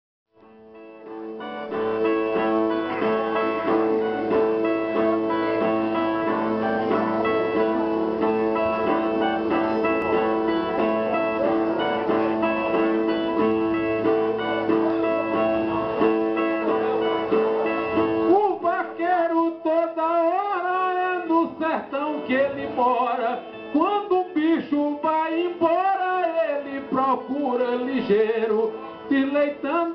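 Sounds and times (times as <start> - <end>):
plucked string instruments: 0.4 - 29.9
man singing: 18.2 - 29.9.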